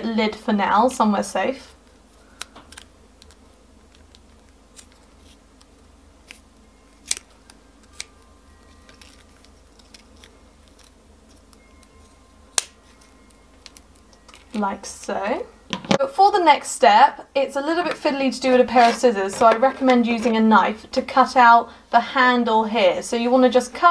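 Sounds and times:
scissors snipping plastic: 2.3 - 6.4, 7.0 - 14.6.

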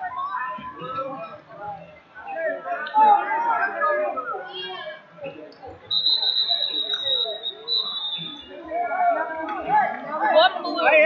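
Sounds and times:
crowd chatter: 0.0 - 11.0
referee's whistle blast: 5.9 - 8.5.

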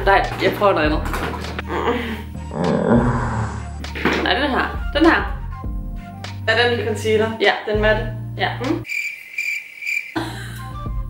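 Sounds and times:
background music: 0.0 - 8.9, 10.2 - 11.0
cricket chirping: 8.8 - 10.6.

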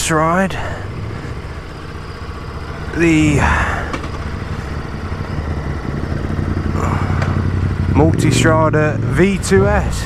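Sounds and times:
motorcycle engine idling: 0.0 - 10.0
another motorcycle approaching: 0.6 - 10.0.

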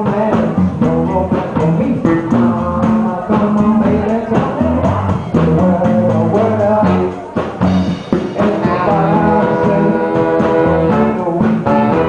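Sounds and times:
bass: 0.0 - 12.0
drums with steady beat: 0.0 - 12.0
electric guitar: 0.0 - 12.0
saxophones and trumpet: 8.4 - 12.0.

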